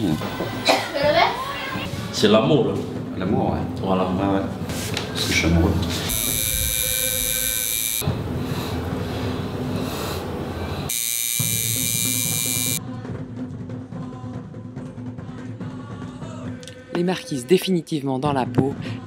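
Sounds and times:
background music: 0:00.0 - 0:06.1, 0:12.3 - 0:19.0
tattoo machine buzzing: 0:06.1 - 0:08.1, 0:10.9 - 0:12.8.

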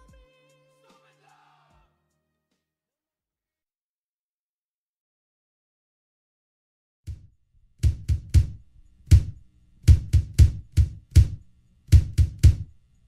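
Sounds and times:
hip-hop drum beat: 0:00.0 - 0:01.4, 0:07.8 - 0:12.7.

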